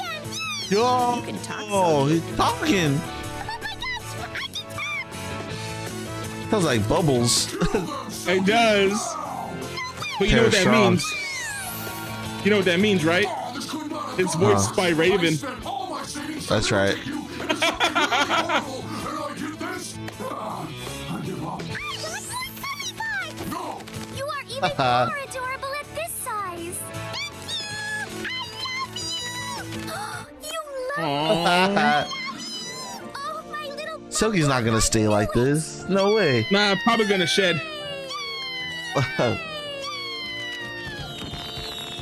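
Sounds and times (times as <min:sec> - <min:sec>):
cartoon creature squeaks: 0:00.0 - 0:00.7, 0:27.1 - 0:29.6, 0:36.3 - 0:41.3
cartoon character voice: 0:00.0 - 0:05.2, 0:07.2 - 0:11.8, 0:14.2 - 0:15.4, 0:21.7 - 0:40.5
background music: 0:00.0 - 0:42.0.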